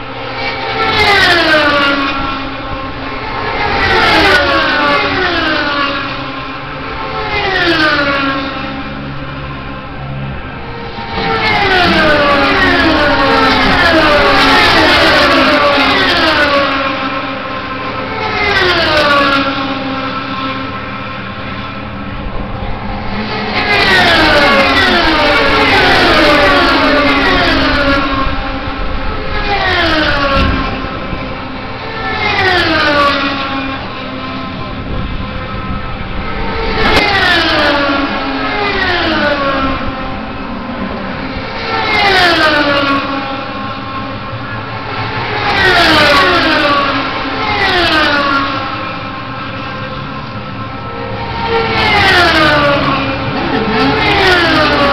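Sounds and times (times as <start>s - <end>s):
race cars passing at speed: 0.0s - 54.9s.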